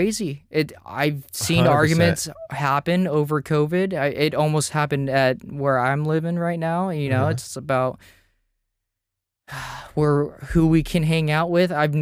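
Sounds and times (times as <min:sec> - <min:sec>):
man speaking: 0:00.0 - 0:07.8.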